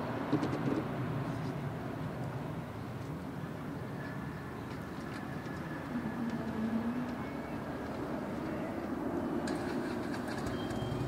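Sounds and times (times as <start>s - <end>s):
distant jet engines rumbling: 0.0s - 11.0s.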